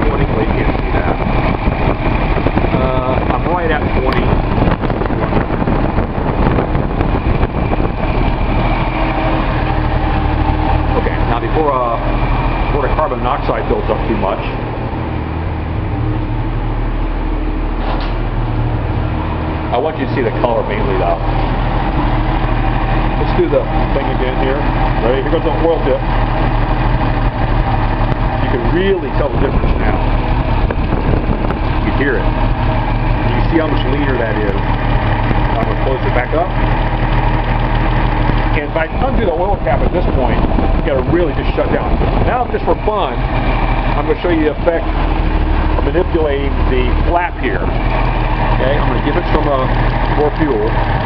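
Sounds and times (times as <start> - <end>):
car engine running: 0.0 - 51.0.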